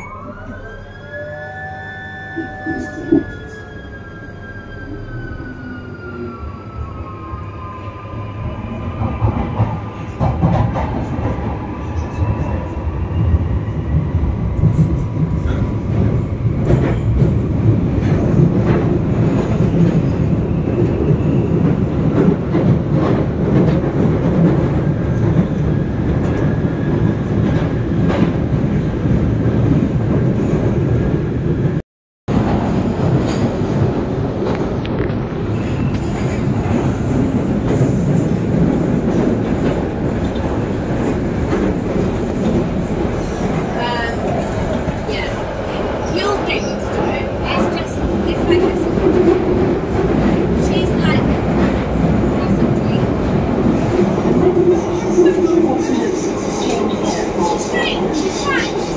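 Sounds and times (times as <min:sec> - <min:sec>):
train wheels rumbling on rail: 0:08.1 - 0:58.9.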